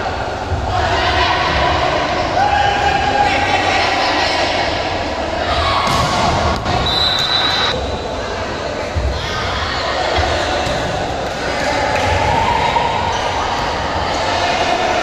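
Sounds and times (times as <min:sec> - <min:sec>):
players and spectators shouting: 0:00.0 - 0:15.0
high whistle blast: 0:06.8 - 0:07.8.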